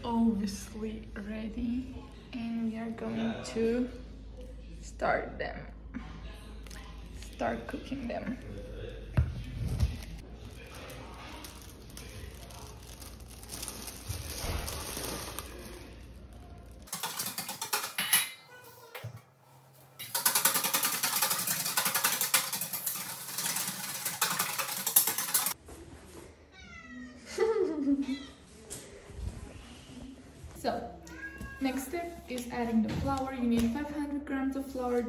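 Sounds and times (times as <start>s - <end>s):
tap water running into sink: 20.2s - 25.6s
cat meowing: 26.6s - 27.2s, 31.1s - 31.7s.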